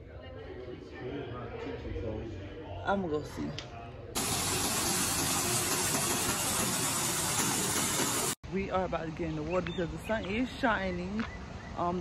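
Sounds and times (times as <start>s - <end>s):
waterfall splashing into hot tub: 4.2s - 8.4s.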